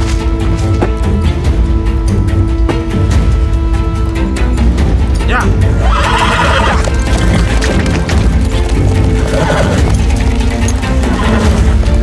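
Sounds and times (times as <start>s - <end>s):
background music: 0.0s - 12.0s
horse whinnying: 5.7s - 8.3s, 9.0s - 10.1s, 10.8s - 11.8s.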